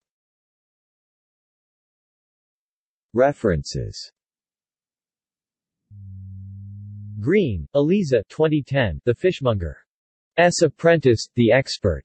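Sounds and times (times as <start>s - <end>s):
low synthetic buzz: 5.9s - 7.4s.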